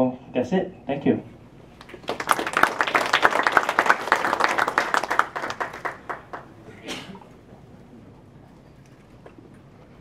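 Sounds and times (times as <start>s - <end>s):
audience applause: 1.8s - 6.6s.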